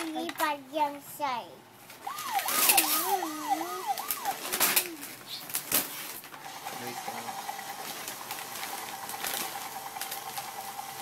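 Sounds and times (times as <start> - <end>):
small electric motor whine: 2.0 - 5.1, 6.4 - 11.0.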